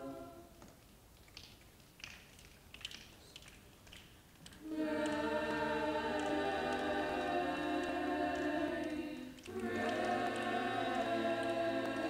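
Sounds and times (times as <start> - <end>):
choir singing: 0.0 - 0.5, 4.6 - 12.0.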